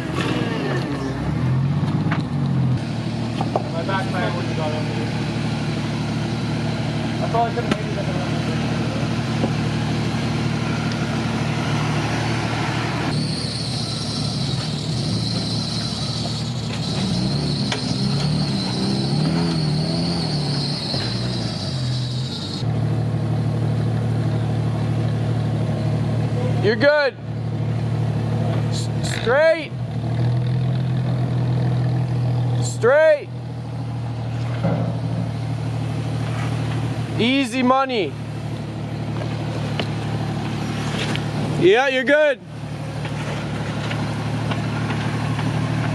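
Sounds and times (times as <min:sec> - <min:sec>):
truck engines at low revs: 0:00.0 - 0:45.9
short squeals: 0:10.6 - 0:22.6.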